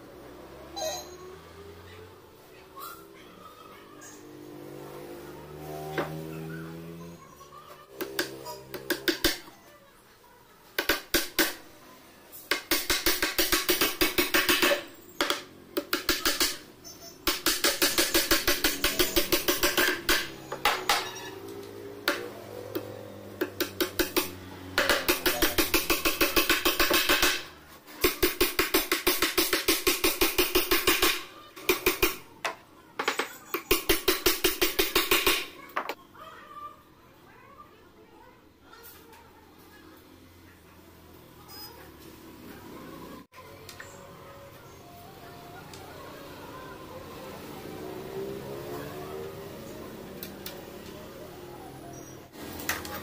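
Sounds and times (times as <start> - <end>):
hammer nailing plywood: 12.5 - 16.6, 17.2 - 21.1, 23.4 - 32.2, 33.6 - 35.5.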